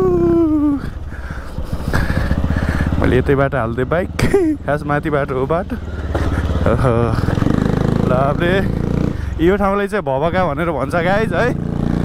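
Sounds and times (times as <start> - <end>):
rider whooping: 0.0 - 1.0
motorcycle engine running: 0.0 - 12.0.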